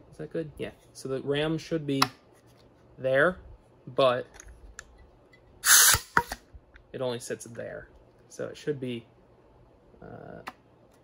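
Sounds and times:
compressed air hiss: 5.6s - 6.2s.

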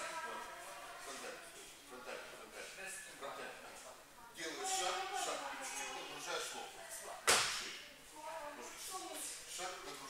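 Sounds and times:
sharp slap ringing in hall: 7.2s - 7.8s.

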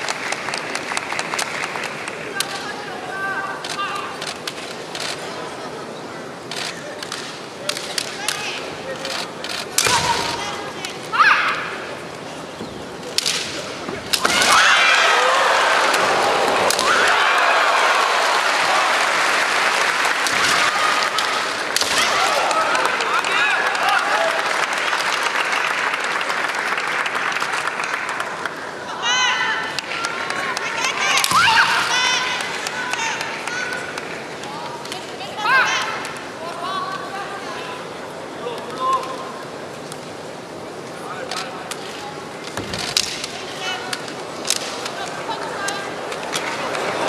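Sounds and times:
arena background noise: 0.0s - 47.0s
loud shouting: 14.1s - 24.6s, 28.9s - 33.9s.

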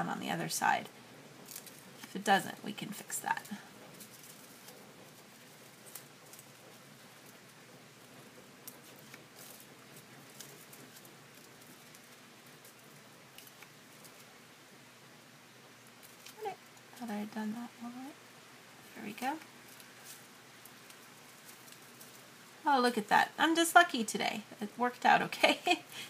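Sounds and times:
low steady hiss: 0.0s - 26.0s.

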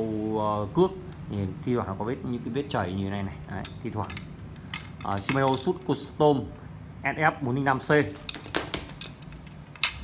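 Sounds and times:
rod sections clicking together: 8.1s - 10.0s.

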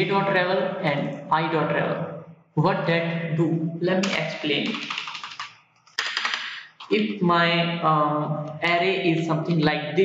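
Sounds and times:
computer keyboard typing: 4.0s - 7.2s.

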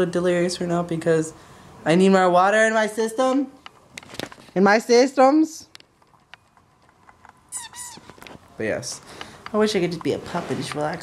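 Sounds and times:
faint rustles: 5.9s - 11.0s.

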